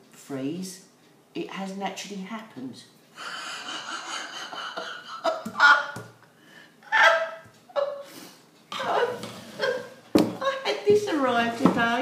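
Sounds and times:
woman breathing or laughing: 3.2 - 5.4.

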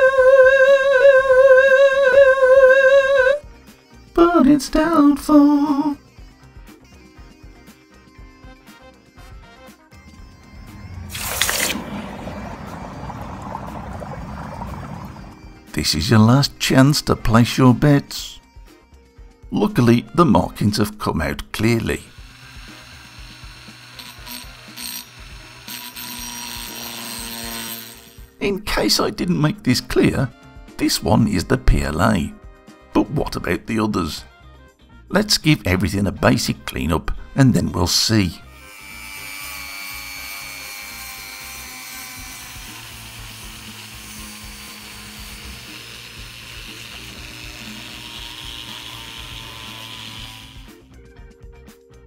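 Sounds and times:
faint motor whine: 22.1 - 28.2, 38.4 - 50.8
rotary tool cutting metal: 22.1 - 28.4, 38.4 - 50.9.

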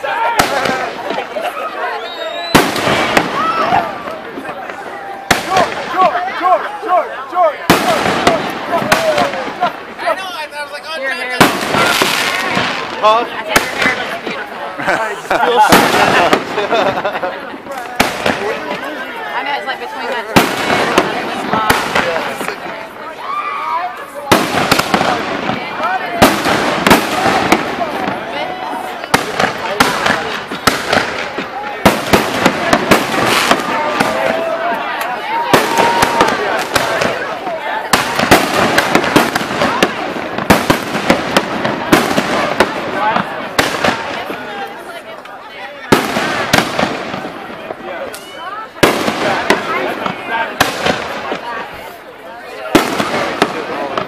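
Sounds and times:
fireworks bangs and crackles: 0.0 - 54.0.

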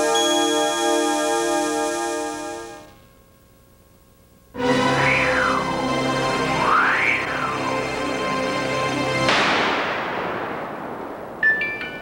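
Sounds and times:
held synthesizer chord: 0.0 - 2.9, 4.6 - 9.3.

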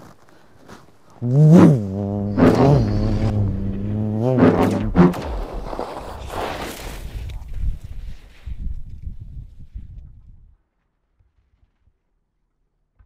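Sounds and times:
low droning tone: 1.2 - 5.3
rushing noise: 1.7 - 6.4.

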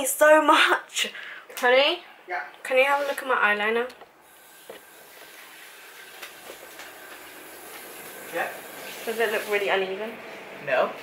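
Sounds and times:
steady hiss: 4.2 - 9.8.

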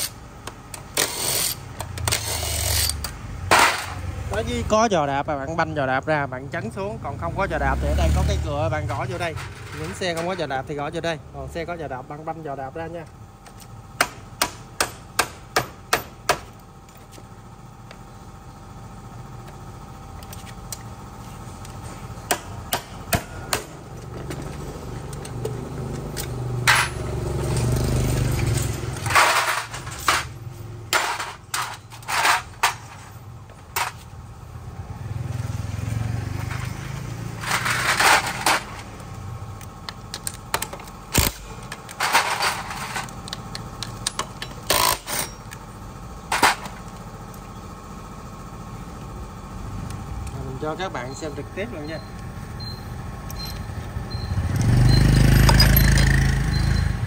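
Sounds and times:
scraping and rattling: 8.9 - 10.5, 25.4 - 34.1, 36.4 - 39.0, 41.7 - 43.2.

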